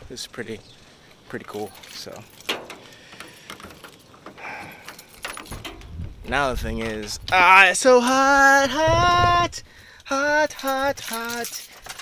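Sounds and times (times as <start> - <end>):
keys jingling: 1.4 - 8.7, 9.8 - 12.0.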